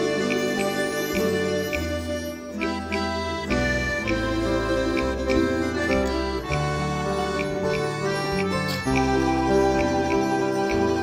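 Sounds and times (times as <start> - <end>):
accordion sustained notes: 0.0 - 11.0
plucked guitars and lutes: 0.0 - 11.0.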